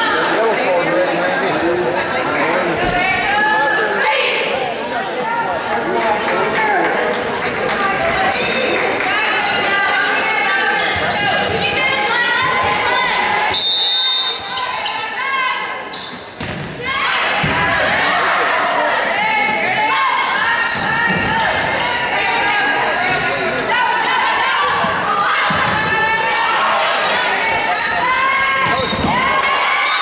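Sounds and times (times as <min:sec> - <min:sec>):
players and spectators calling out: 0:00.0 - 0:30.0
referee's whistle blast: 0:13.5 - 0:14.6.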